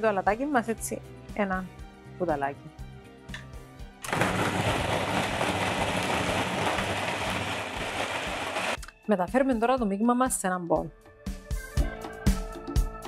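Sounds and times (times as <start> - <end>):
food processor running: 4.0 - 8.8.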